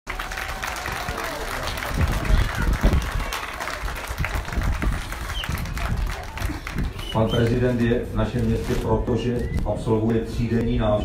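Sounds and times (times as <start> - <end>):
crowd clapping: 0.0 - 7.8.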